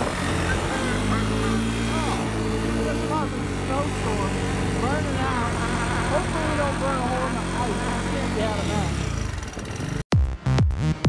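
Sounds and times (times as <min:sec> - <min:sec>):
engine running under throttle: 0:00.0 - 0:10.1.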